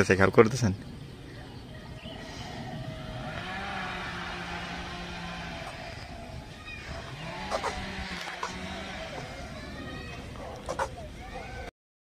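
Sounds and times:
outdoor background noise: 0.0s - 11.7s.

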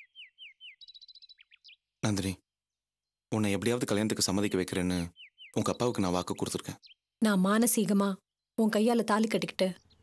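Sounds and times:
bird chirping: 0.0s - 10.0s.

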